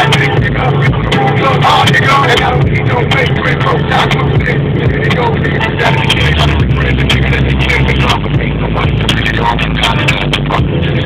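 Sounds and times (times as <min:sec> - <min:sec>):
car cabin road and engine drone: 0:00.0 - 0:11.0
music with vocals on car stereo: 0:00.0 - 0:11.0.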